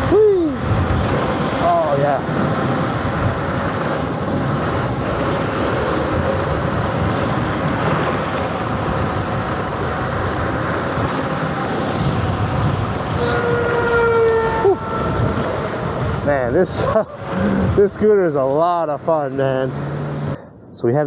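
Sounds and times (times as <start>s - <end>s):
wind rush on microphone: 0.0s - 18.3s
scooter tyre noise: 0.0s - 20.4s.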